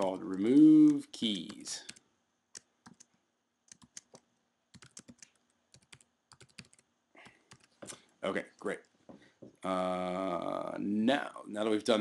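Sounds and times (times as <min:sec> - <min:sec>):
computer keyboard typing: 0:00.0 - 0:07.8.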